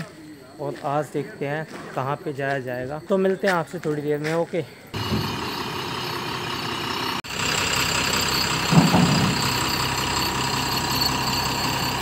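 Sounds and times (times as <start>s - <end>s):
diesel truck engine idling: 4.9s - 12.0s.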